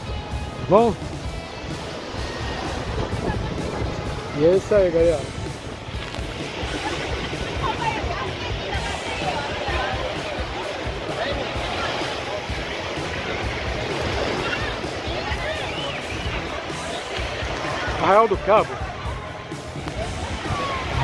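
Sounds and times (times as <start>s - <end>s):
wind rumbling on microphone: 0.0s - 18.0s
crowd chattering and calling: 0.0s - 21.0s
small waves washing onto sand: 0.0s - 21.0s.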